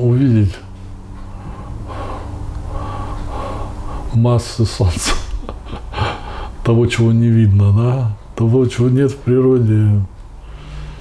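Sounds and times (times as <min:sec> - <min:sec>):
low steady hum: 0:00.0 - 0:11.0
man breathing out: 0:01.3 - 0:04.1.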